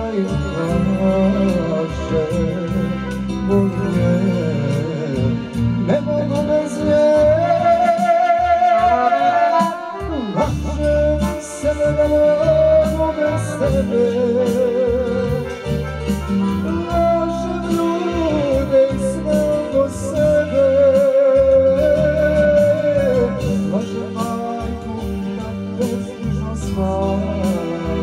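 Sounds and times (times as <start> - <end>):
accordion: 0.0 - 28.0
bass and rhythm: 0.0 - 28.0
electronic keyboard: 0.0 - 28.0
man singing: 0.0 - 28.0.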